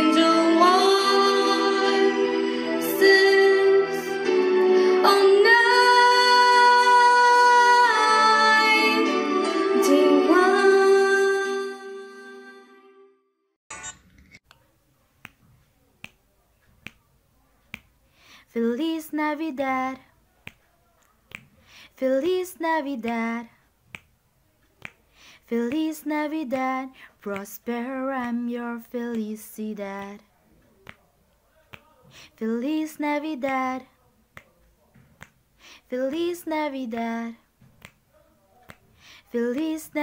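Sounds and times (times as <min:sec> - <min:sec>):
person singing unaccompanied: 0:00.0 - 0:12.7, 0:18.5 - 0:20.6, 0:22.0 - 0:23.6, 0:24.8 - 0:31.0, 0:31.7 - 0:34.0, 0:35.8 - 0:37.9, 0:38.7 - 0:40.0
finger snaps: 0:15.2 - 0:17.1, 0:17.7 - 0:18.0, 0:20.4 - 0:21.6, 0:23.0 - 0:23.3, 0:23.9 - 0:24.1, 0:24.8 - 0:25.0, 0:27.3 - 0:27.6, 0:30.0 - 0:31.1, 0:34.4 - 0:35.4, 0:37.8 - 0:38.0.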